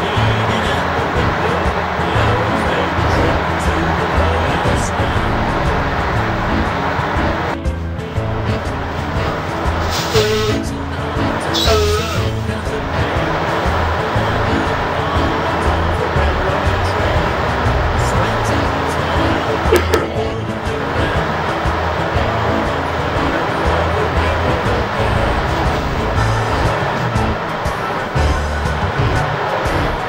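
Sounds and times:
background music with bass line: 0.0s - 30.0s
steady rushing noise: 12.5s - 30.0s.

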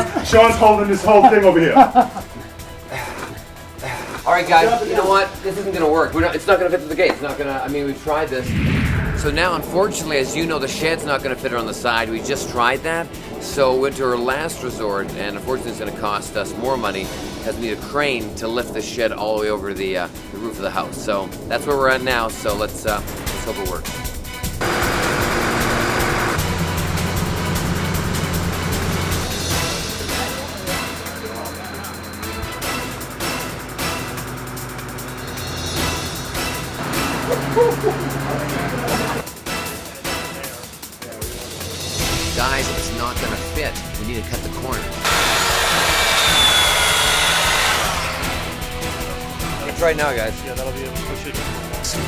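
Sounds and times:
background music: 0.0s - 52.0s
steady rush of blowing air: 8.3s - 27.3s
diesel engine humming: 24.6s - 39.2s.

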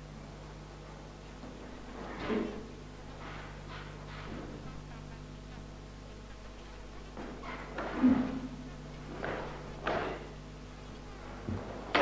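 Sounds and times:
low buzzing hum: 0.0s - 12.0s.

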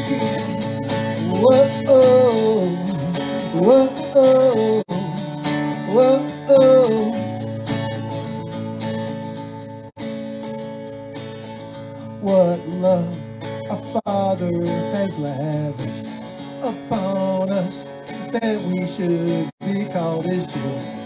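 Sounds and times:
man singing wordless notes: 0.0s - 7.4s, 12.2s - 21.0s
acoustic guitar strumming: 0.0s - 21.0s.

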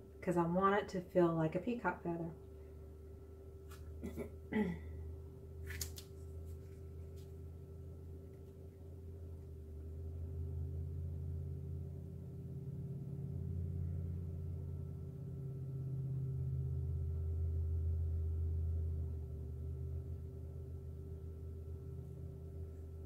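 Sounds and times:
low droning hum: 0.0s - 23.0s.

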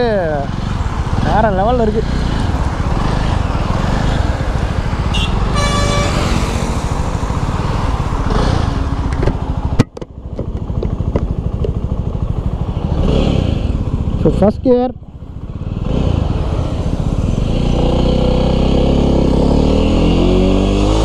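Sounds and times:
motorcycle engine running: 0.0s - 20.7s
vehicle horn honk: 5.1s - 6.4s.

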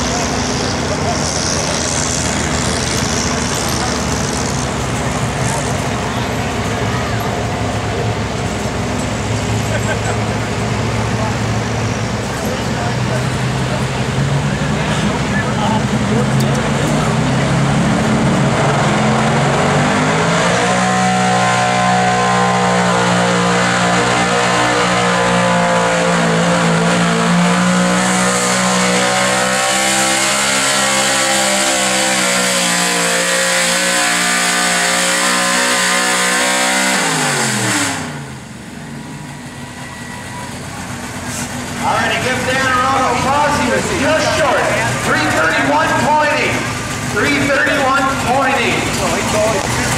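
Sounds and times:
truck engine revving under load: 0.0s - 49.9s.

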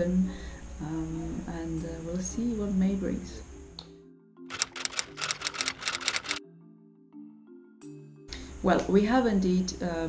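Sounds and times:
soft background music: 0.0s - 10.0s
typewriter key clicks: 4.5s - 6.4s.

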